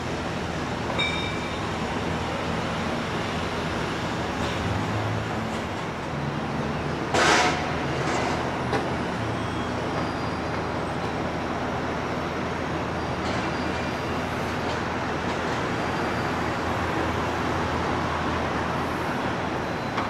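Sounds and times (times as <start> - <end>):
street traffic noise: 0.0 - 20.0.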